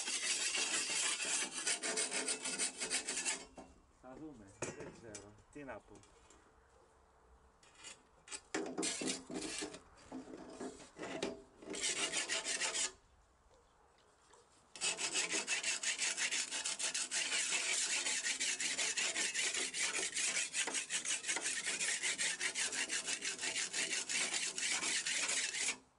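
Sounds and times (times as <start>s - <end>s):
tool scraping along metal blade: 0.0s - 3.6s, 7.6s - 13.0s, 14.8s - 25.8s.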